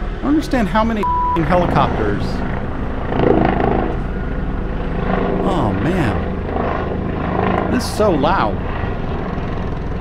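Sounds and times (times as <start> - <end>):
helicopter rotor beat: 0.0 - 10.0.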